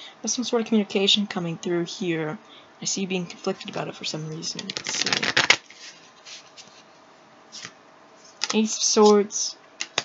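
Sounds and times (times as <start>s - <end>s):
faint card rustles: 4.4s - 8.6s.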